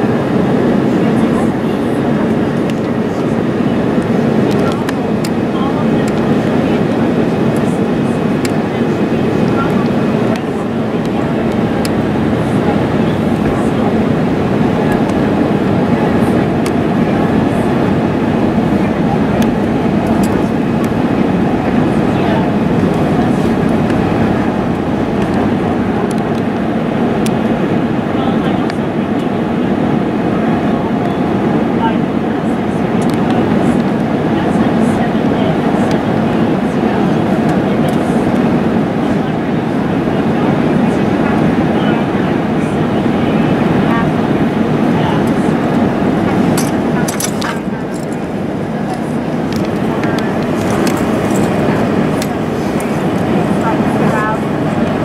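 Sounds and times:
airliner cabin noise: 0:00.0 - 0:55.0.

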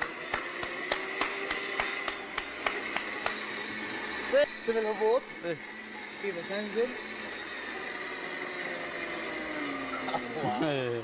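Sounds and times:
blender motor running: 0:00.0 - 0:11.0.

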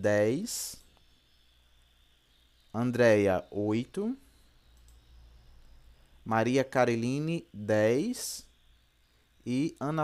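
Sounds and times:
computer mouse clicks: 0:04.6 - 0:05.1.

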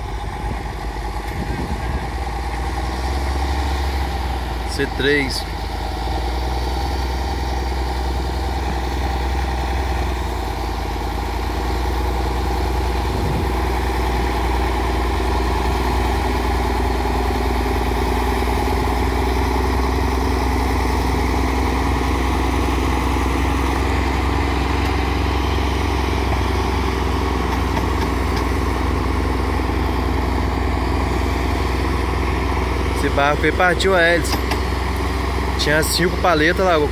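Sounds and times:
tractor diesel engines under load: 0:00.0 - 0:36.9.

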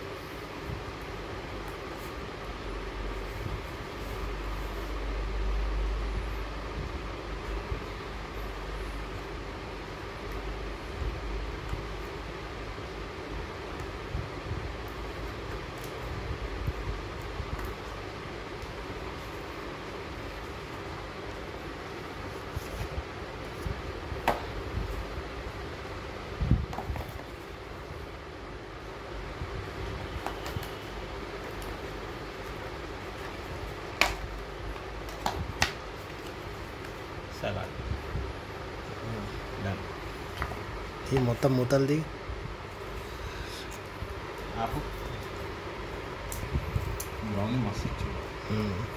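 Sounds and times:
electric fan humming: 0:00.0 - 0:48.9.

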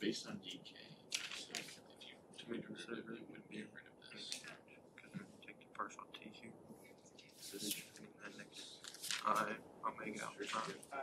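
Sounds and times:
people talking quietly: 0:00.0 - 0:11.0.

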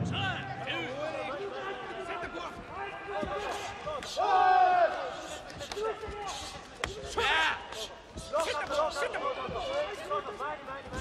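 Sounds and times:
people shouting: 0:00.0 - 0:10.1.

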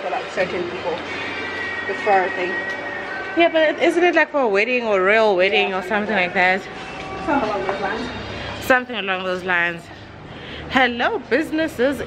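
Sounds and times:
steady high-pitched tone: 0:01.1 - 0:09.7
woman speaking: 0:01.9 - 0:02.7, 0:03.4 - 0:10.1, 0:10.7 - 0:12.0.

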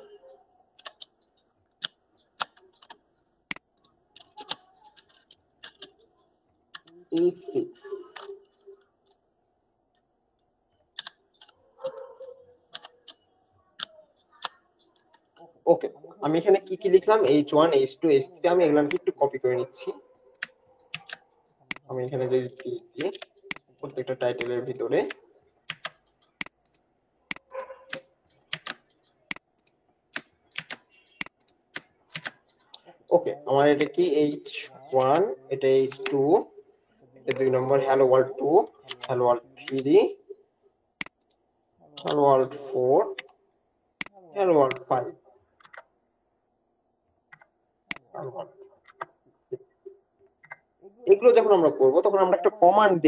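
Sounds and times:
computer keyboard keystrokes: 0:00.8 - 0:06.0, 0:20.3 - 0:32.8
keyboard key clicks: 0:25.7 - 0:32.6.

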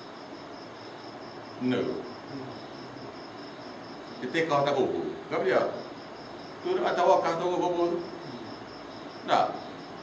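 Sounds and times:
insect chirping: 0:00.0 - 0:10.0
man speaking: 0:01.6 - 0:03.1, 0:06.6 - 0:08.6.

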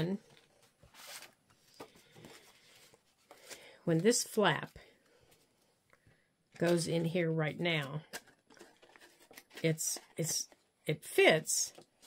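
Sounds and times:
woman speaking: 0:00.0 - 0:00.3, 0:03.8 - 0:04.9, 0:06.6 - 0:08.1, 0:09.6 - 0:11.8
paper rustling: 0:00.3 - 0:04.2, 0:08.1 - 0:10.6.

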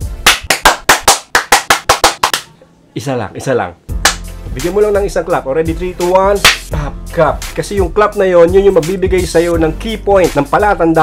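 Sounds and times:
rapid hand claps: 0:00.2 - 0:02.5, 0:04.0 - 0:04.3, 0:06.4 - 0:06.7.

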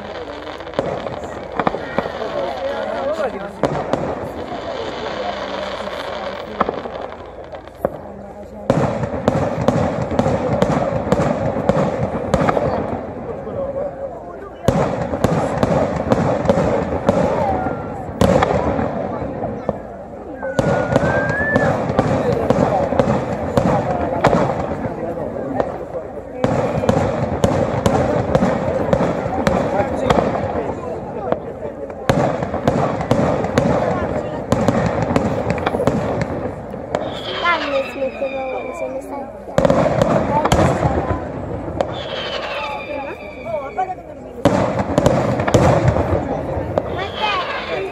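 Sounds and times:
firework bangs and crackle: 0:00.0 - 0:47.9.

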